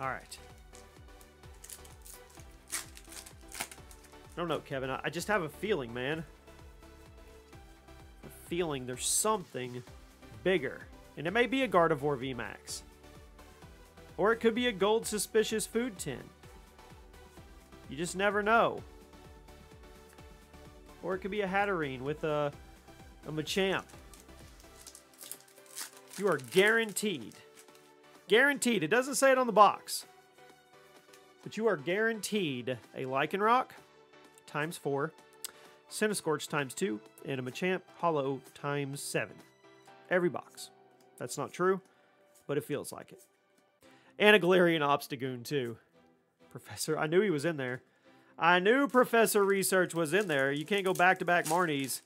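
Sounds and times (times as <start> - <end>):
background music with steady beat: 0.0 - 52.0
trading cards rustling: 1.5 - 4.4, 23.4 - 27.9, 48.7 - 52.0.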